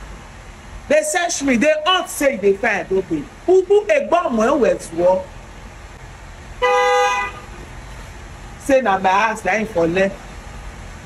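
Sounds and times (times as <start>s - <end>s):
vehicle horn toot: 6.6s - 7.6s.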